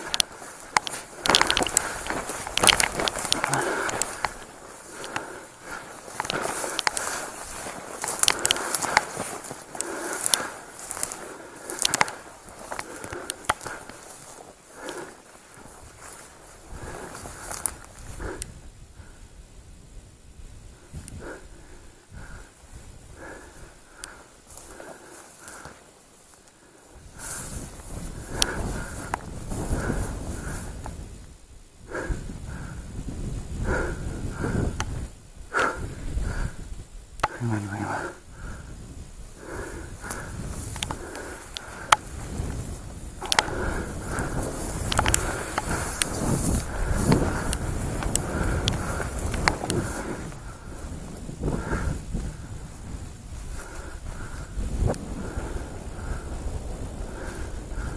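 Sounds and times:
footsteps in a field: 0.0 - 19.5, 20.3 - 57.9
dry grass rustling against clothing: 0.0 - 57.9.

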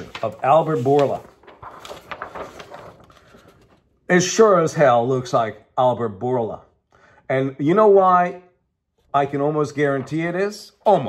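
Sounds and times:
paper rustling and crinkling: 0.0 - 3.9.

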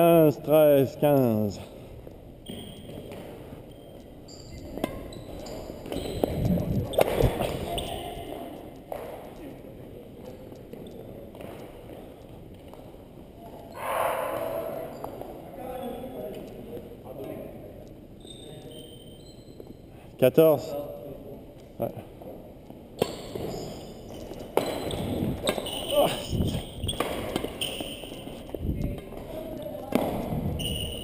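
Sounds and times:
racquet hitting shuttlecock: 24.6 - 25.8, 26.8 - 28.2.

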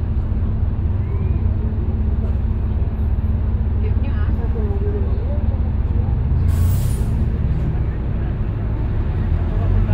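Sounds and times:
bus engine idling: 0.0 - 9.9
air brake hiss: 6.5 - 7.2.

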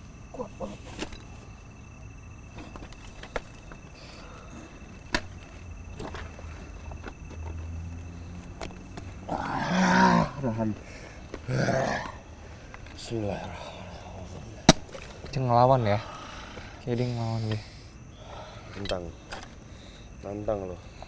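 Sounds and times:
man's loud wordless cry: 9.3 - 10.6.

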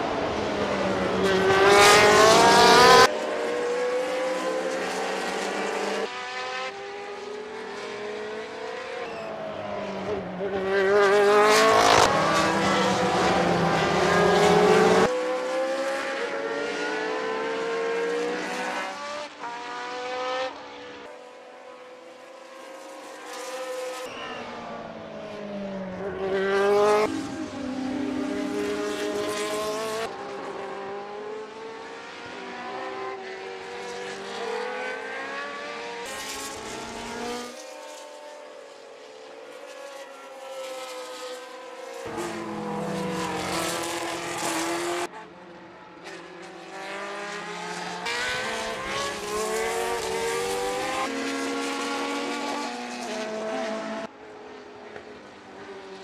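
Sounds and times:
racing car engines passing: 0.0 - 56.0.

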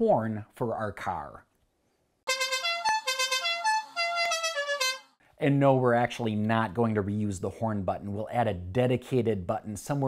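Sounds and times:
electronic horn tune: 2.3 - 5.2.

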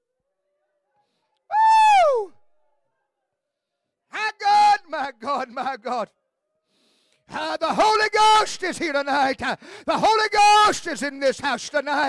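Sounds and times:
person's high drawn-out cry: 1.5 - 2.4.

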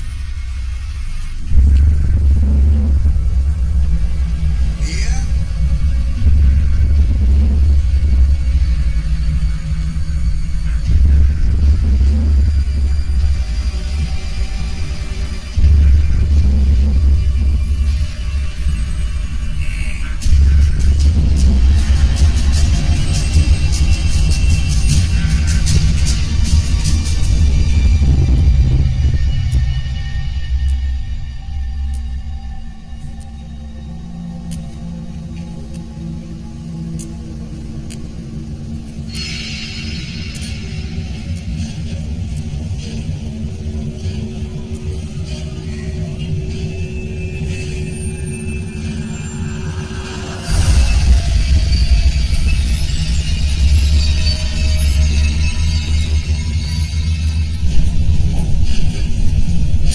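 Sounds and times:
deep low rumbling drones: 0.0 - 59.9.

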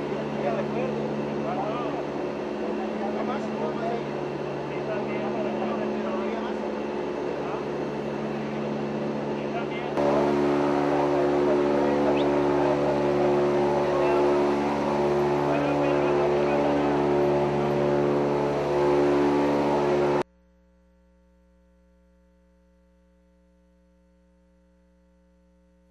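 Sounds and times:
aircraft engine drone: 0.0 - 20.2.

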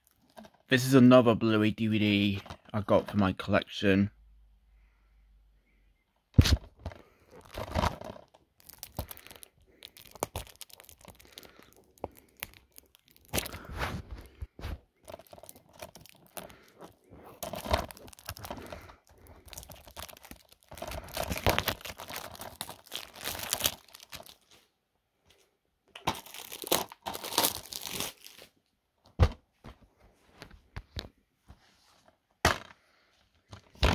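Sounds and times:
plastic shrink-wrap tearing: 7.3 - 13.8, 15.0 - 24.5, 26.1 - 28.5.

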